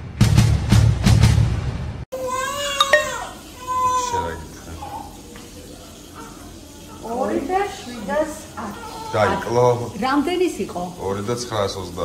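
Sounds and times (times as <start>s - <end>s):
newborn baby crying: 2.1s - 5.2s, 8.6s - 9.9s
adult voices: 3.9s - 12.0s.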